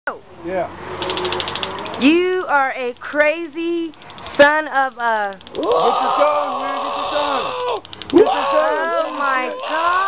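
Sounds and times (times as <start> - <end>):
stun gun crackling: 1.0 - 5.7, 7.8 - 8.3.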